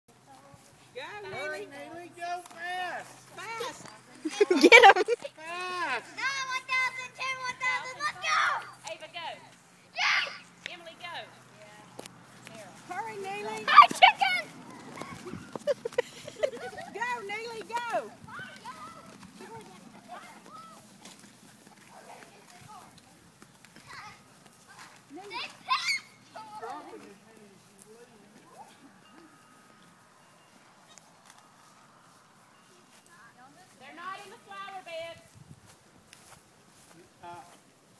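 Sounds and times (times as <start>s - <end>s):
children calling and squealing: 6.1s - 8.9s, 9.9s - 10.6s, 13.2s - 21.1s, 23.8s - 27.1s
child's shrill shout: 6.2s - 8.7s, 10.0s - 10.4s, 25.6s - 26.6s.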